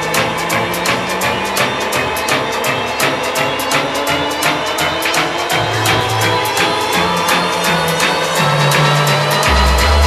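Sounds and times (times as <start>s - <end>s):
electro-swing dance music: 0.0s - 10.0s.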